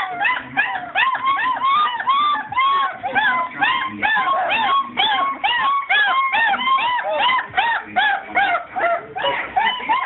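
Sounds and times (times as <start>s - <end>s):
puppy whimpering: 0.0s - 10.0s.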